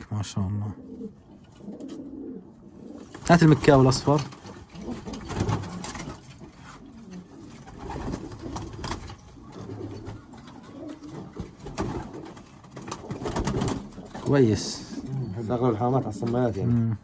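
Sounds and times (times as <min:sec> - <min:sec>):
pigeons cooing: 0:00.7 - 0:17.0.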